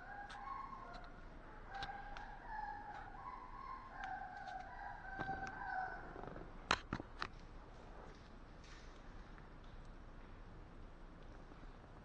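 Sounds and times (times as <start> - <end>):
puppy whining: 0.0 - 6.4.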